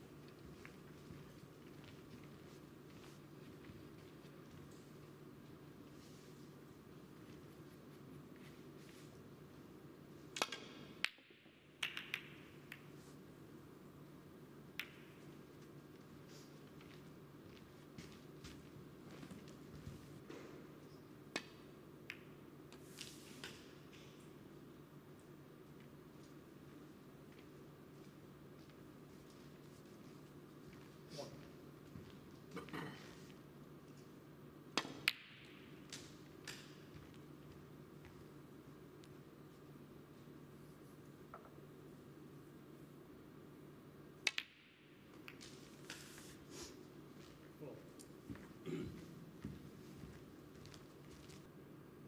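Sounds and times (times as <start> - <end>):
snooker balls clicking: 10.4 - 13.0, 14.7 - 15.4, 21.3 - 22.8, 34.7 - 37.2, 44.2 - 45.7.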